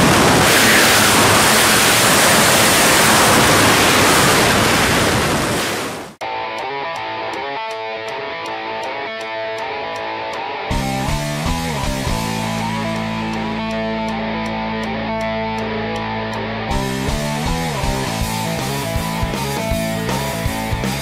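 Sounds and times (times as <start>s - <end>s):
wind rushing on microphone: 0.0s - 6.2s
electric guitar rock music: 6.2s - 21.0s.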